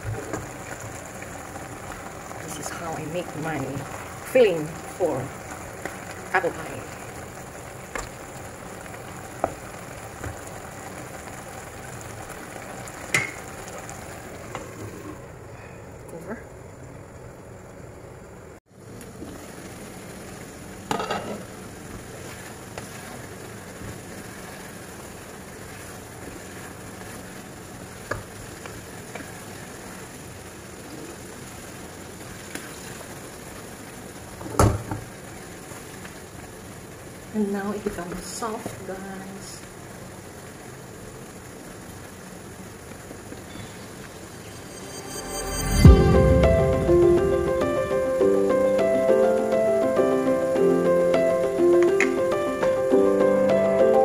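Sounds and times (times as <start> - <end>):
apples sizzling in frying pan: 0.0 - 17.9, 18.7 - 54.0.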